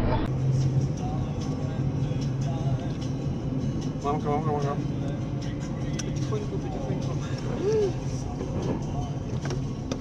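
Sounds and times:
car engine drone: 0.0 - 10.0
road noise: 0.0 - 10.0.

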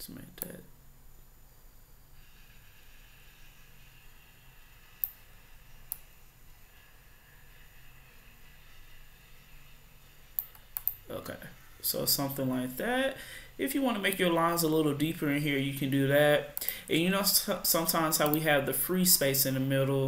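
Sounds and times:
faint background hum: 0.0 - 20.0
computer mouse clicks: 0.4 - 0.6, 4.6 - 6.2, 10.3 - 11.0, 16.6 - 16.8, 18.2 - 18.5.

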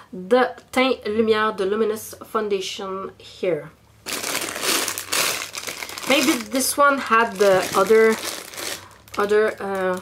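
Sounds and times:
packaging crinkling and rustling: 4.0 - 10.0.

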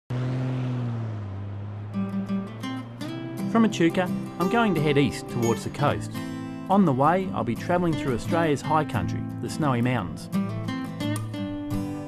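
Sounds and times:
car passing by: 0.1 - 3.5.

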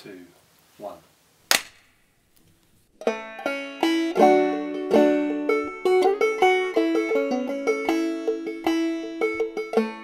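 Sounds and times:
sharp hand clap: 1.5 - 1.9.

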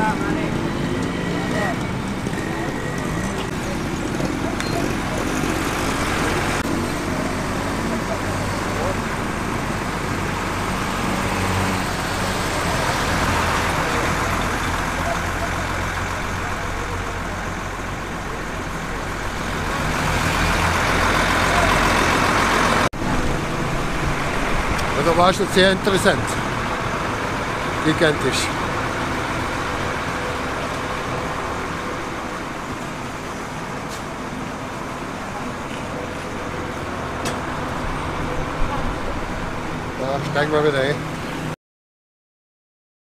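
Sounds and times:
motorbike and vehicle engines: 0.0 - 41.6.

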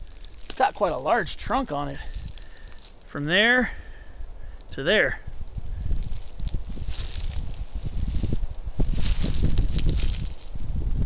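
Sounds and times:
footsteps crunching dry leaves: 0.0 - 3.2, 5.6 - 10.7
low microphone rumble: 5.2 - 11.0.

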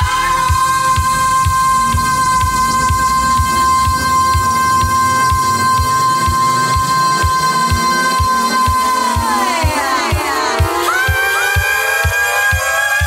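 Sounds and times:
disco dance music: 0.0 - 13.0.

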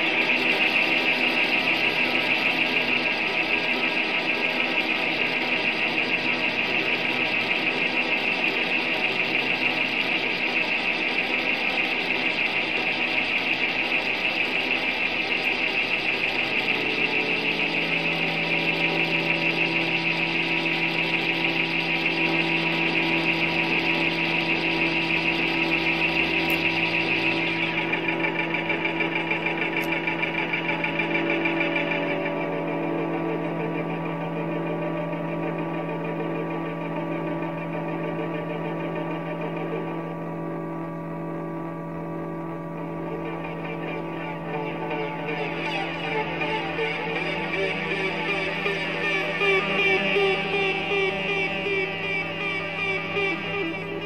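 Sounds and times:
ambient drone of sustained tones: 0.0 - 54.0
low held tones: 0.0 - 54.0.

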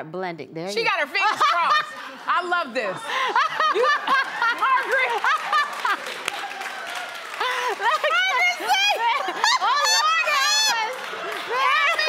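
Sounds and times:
women laughing: 1.2 - 6.2, 7.3 - 12.0.

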